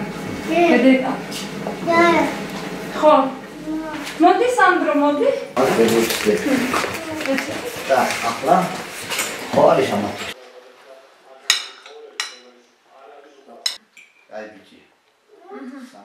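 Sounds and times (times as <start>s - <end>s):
cutlery clinking on plates: 11.5s - 12.5s.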